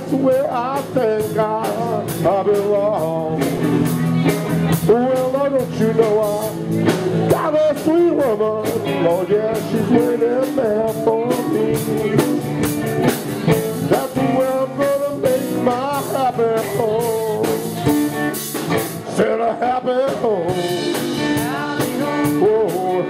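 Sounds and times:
drum kit beat: 0.0 - 23.0
electric guitar lead: 0.0 - 23.0.

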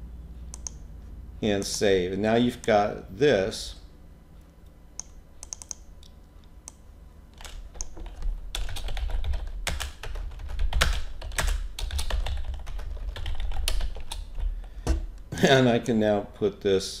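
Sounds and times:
typing on computer keyboard: 5.4 - 5.8, 7.4 - 14.5.

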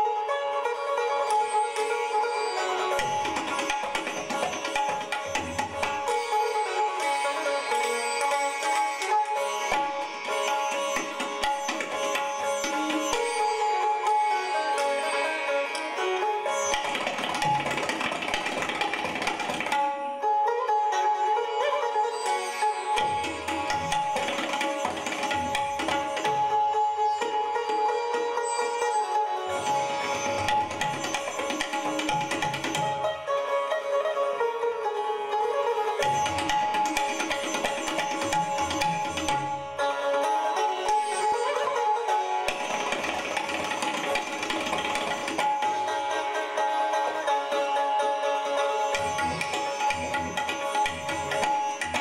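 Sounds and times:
sitars playing plucked strokes: 0.0 - 52.0
tabla low drum: 3.0 - 6.3, 9.7 - 13.4, 16.7 - 19.8, 23.0 - 26.6, 29.6 - 33.1, 36.0 - 39.8, 42.5 - 45.9, 48.8 - 52.0.

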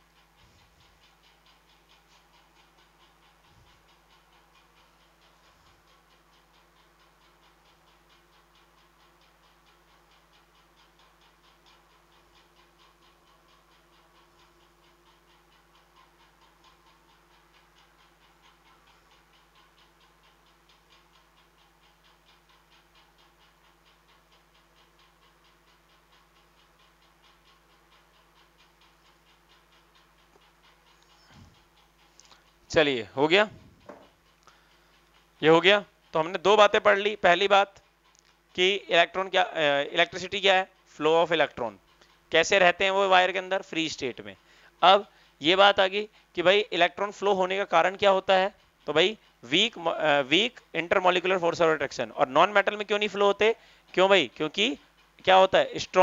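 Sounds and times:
rapid ticking: 0.0 - 56.0.

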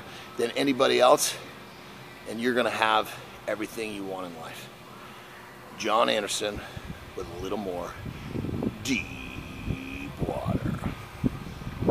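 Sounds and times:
short rising vocal sound: 8.7 - 11.0
man drawing out a word: 8.8 - 11.0.

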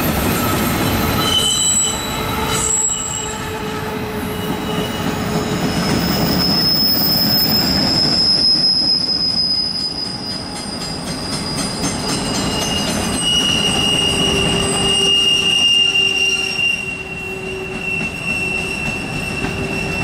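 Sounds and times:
train wheels squealing: 0.0 - 20.0.

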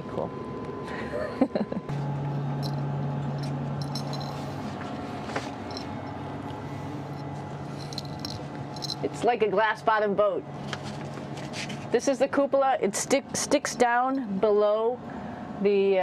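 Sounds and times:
ventilation hiss and hum: 0.0 - 16.0.

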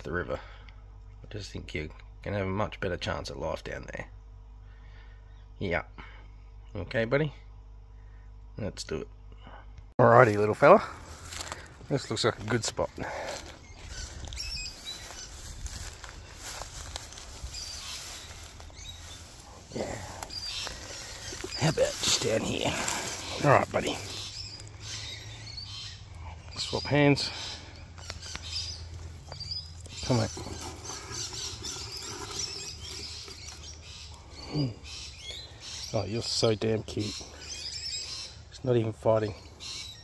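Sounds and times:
small birds chirping: 0.0 - 40.0
footsteps through long grass: 10.1 - 25.1
low microphone rumble: 13.2 - 26.6.

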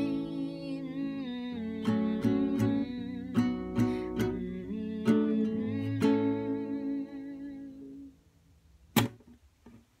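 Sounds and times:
acoustic guitar chord: 1.8 - 7.6
sharp knock: 9.0 - 9.3.

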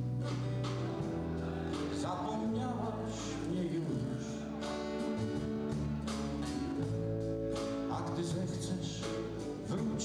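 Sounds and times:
acoustic guitars strumming chords: 0.0 - 10.0.

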